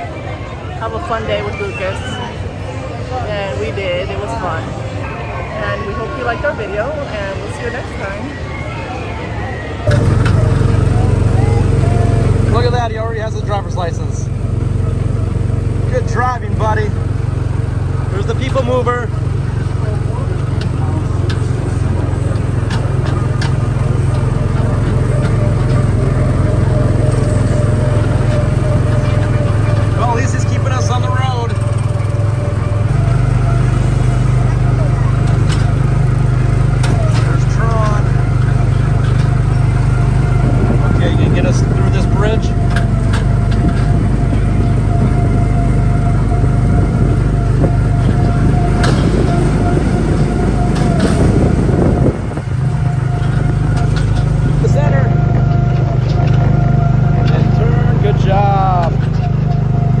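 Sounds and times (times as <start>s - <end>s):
small ride car engine running: 0.0s - 60.0s.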